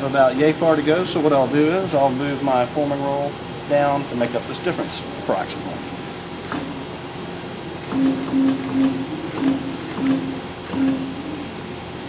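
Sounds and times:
steady machine noise: 0:00.0 - 0:12.0
bending machine short low hums: 0:07.8 - 0:11.6.

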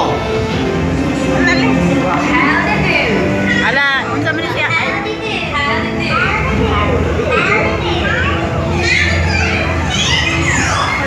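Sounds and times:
voices squealing and shrieking: 0:02.9 - 0:04.9, 0:06.0 - 0:11.0.

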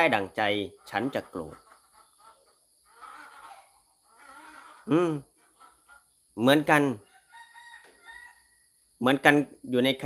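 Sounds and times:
chickens calling: 0:00.0 - 0:10.0
person saying mm: 0:04.9 - 0:05.2.

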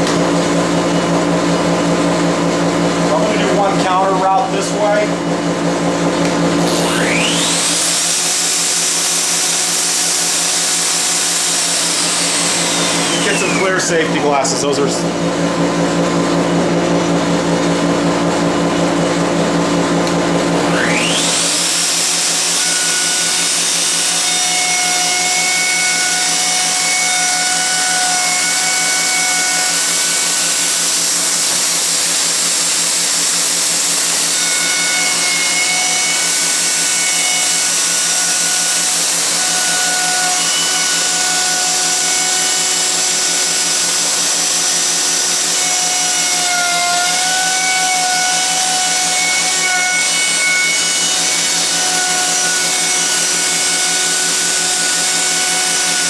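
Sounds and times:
dust collector humming: 0:00.0 - 0:56.0
router whining while cutting wood: 0:00.0 - 0:56.0.

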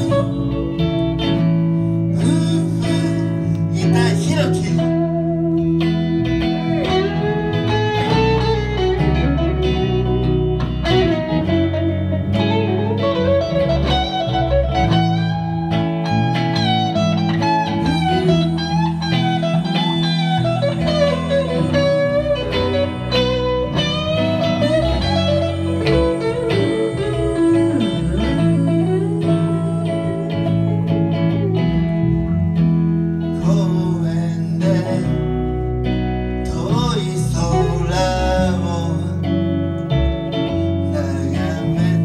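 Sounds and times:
bending lead guitar melody: 0:00.0 - 0:42.0
live blues band playing: 0:00.0 - 0:42.0.

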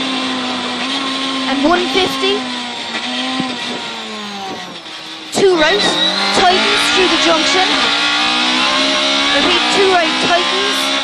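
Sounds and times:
car engine revs falling: 0:00.0 - 0:11.0.

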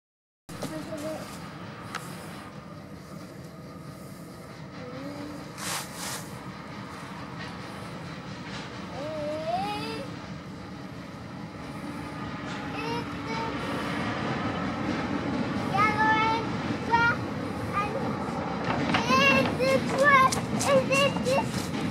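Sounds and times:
locomotive engine: 0:00.5 - 0:21.9
train wheel noise: 0:00.5 - 0:21.9.

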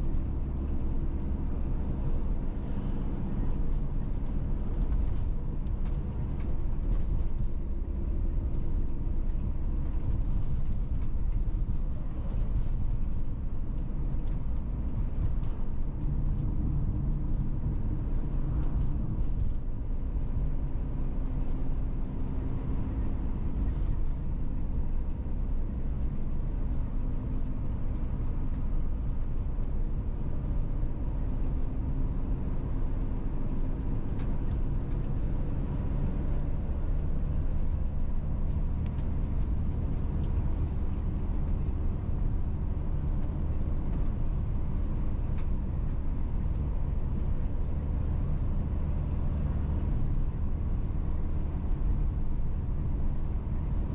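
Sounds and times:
car engine hum: 0:00.0 - 0:53.9
tyres rumbling on asphalt: 0:00.0 - 0:53.9.

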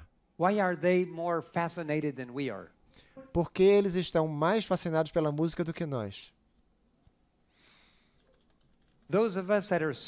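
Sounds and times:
soft hiss: 0:00.0 - 0:10.0.

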